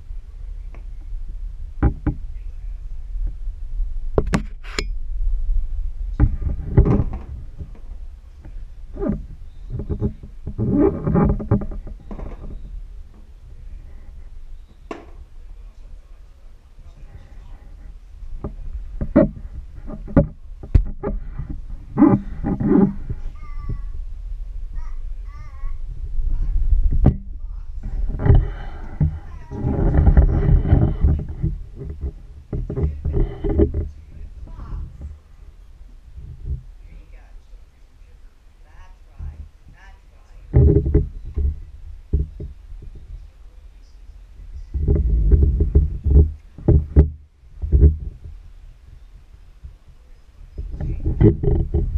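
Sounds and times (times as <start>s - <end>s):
dull low thumps and knocks: 0.0s - 15.3s, 17.2s - 36.8s, 40.5s - 43.3s, 44.6s - 49.8s, 50.6s - 51.9s
toddler making vocal noises: 23.2s - 24.0s, 24.8s - 25.8s.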